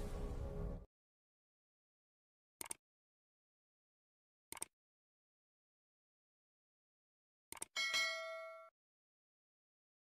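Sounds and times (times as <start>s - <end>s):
quick clicks: 2.6s - 2.8s, 4.5s - 4.7s
notification bell ding: 7.8s - 8.7s.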